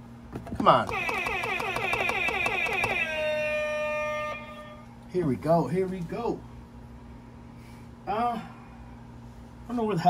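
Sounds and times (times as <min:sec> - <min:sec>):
electronic siren effect: 0:00.9 - 0:05.0.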